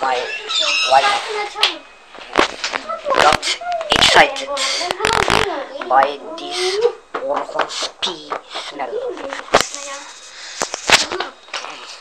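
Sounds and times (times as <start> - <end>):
person talking: 2.8 - 10.2.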